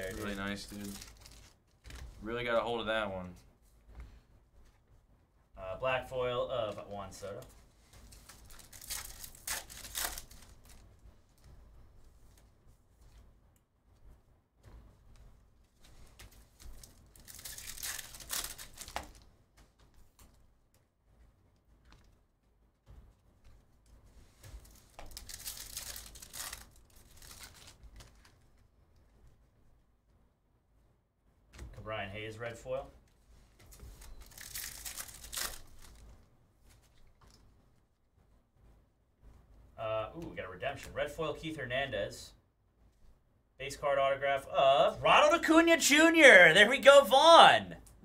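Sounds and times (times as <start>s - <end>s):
foil wrapper tearing and crinkling: 0.0s - 1.6s, 8.1s - 10.8s, 16.4s - 19.2s, 24.6s - 28.1s, 33.9s - 36.0s
cards rustling: 0.0s - 2.2s, 6.7s - 10.9s, 15.8s - 20.3s, 24.2s - 28.5s, 33.5s - 37.4s.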